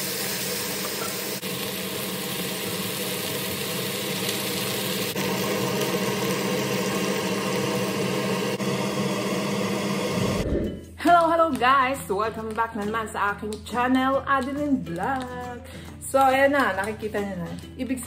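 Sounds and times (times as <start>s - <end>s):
food sizzling in a wok: 0.0s - 10.4s.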